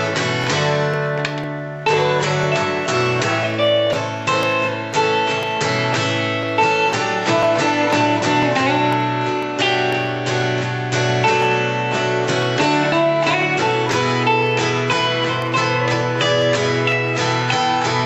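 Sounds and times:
acoustic guitar strumming chords: 0.0 - 18.0
electric guitar through amplifier: 0.0 - 18.0.

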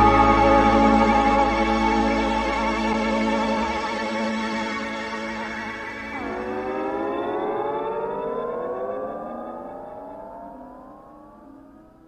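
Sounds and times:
synthesizer chord gliding: 0.0 - 12.0.

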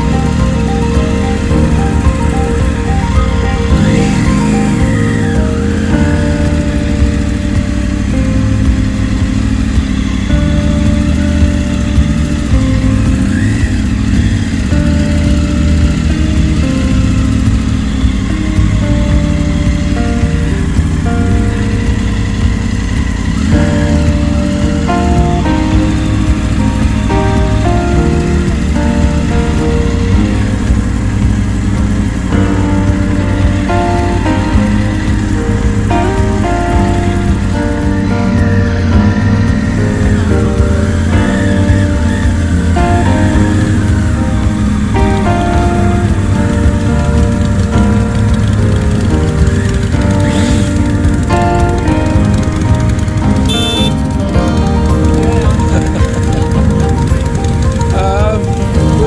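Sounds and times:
background music with melody: 0.0 - 59.0
motorcycle engine revving: 0.0 - 59.0.

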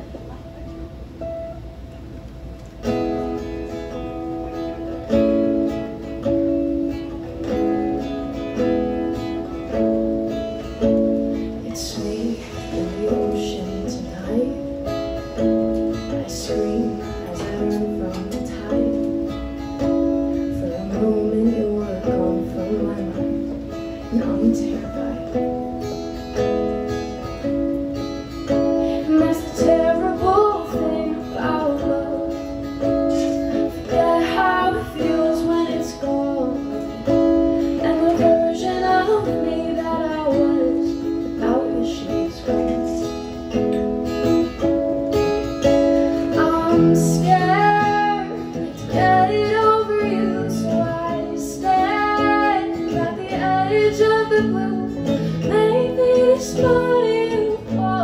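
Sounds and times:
acoustic guitar strumming: 0.0 - 58.0
woman singing: 4.5 - 26.4, 28.3 - 58.0.

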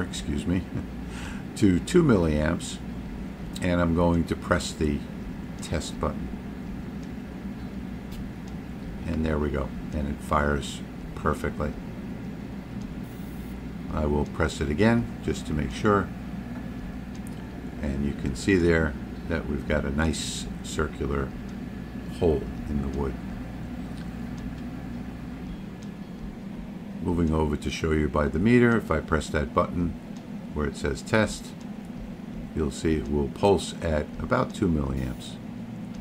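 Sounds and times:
laser engraver and chiller hum: 0.0 - 36.0.

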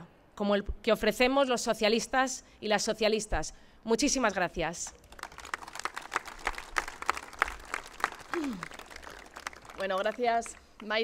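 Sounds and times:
audience applauding: 5.0 - 11.0.

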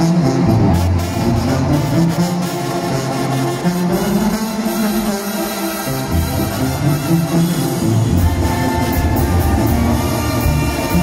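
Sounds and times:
brass band playing live: 0.0 - 11.0.

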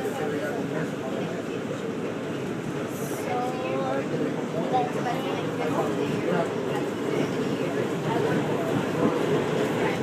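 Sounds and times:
faint voices: 0.0 - 10.0
passenger train rumble: 0.0 - 10.0.

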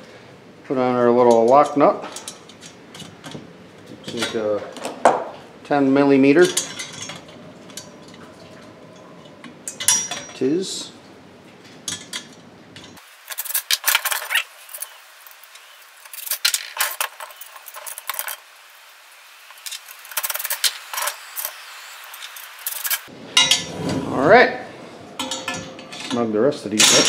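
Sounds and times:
metal nuts and bolts clicking: 11.9 - 18.4, 19.6 - 21.5, 25.2 - 27.0.

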